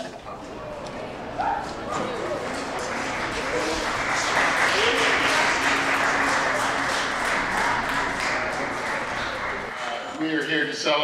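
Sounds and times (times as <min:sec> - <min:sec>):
voices: 0:00.0 - 0:11.0
group applauding: 0:00.4 - 0:10.0.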